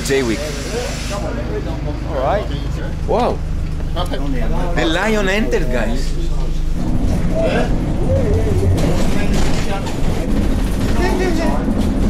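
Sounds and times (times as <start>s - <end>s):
bus engine and road rumble: 0.0s - 12.0s
faint talk: 4.0s - 11.9s.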